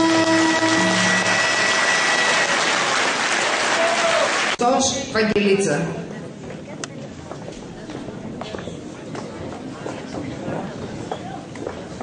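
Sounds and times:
music held notes: 0.0 - 2.9
audience applauding: 0.0 - 4.6.

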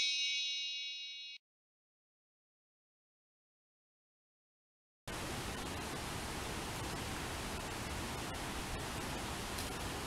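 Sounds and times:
bright metallic ding: 0.0 - 1.4.

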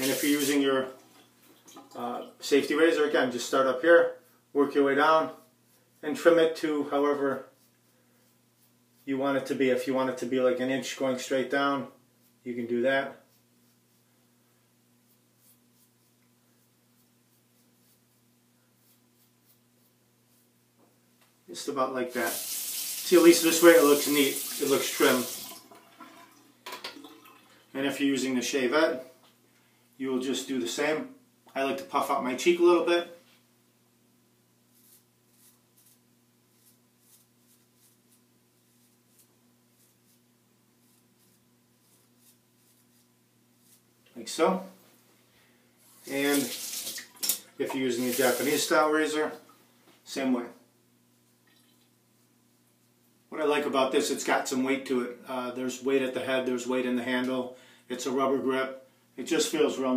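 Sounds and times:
faint steady hum: 0.0 - 59.9
razor scraping beard stubble: 34.7 - 40.2, 40.8 - 43.9.

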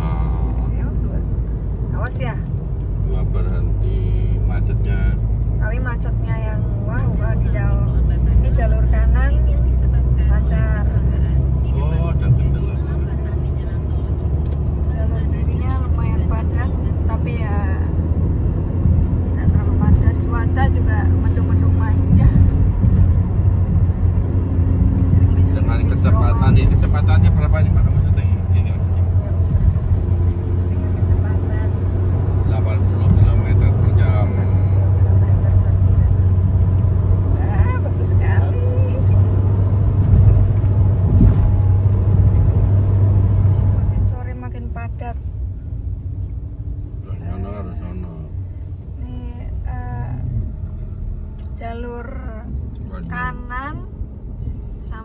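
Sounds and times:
car interior road rumble: 0.0 - 55.0.

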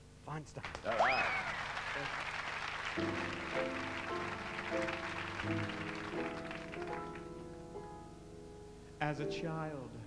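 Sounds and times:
applause: 0.6 - 7.5
grand piano chords: 2.8 - 10.0.

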